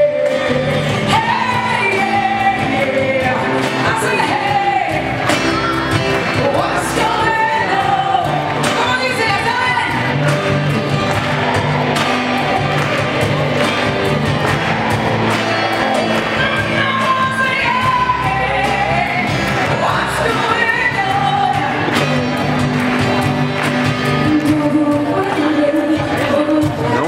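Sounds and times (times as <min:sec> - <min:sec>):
woman singing: 0:00.0 - 0:10.0, 0:16.2 - 0:22.1, 0:24.0 - 0:27.0
acoustic guitar: 0:00.0 - 0:27.0
bass guitar: 0:00.0 - 0:27.0.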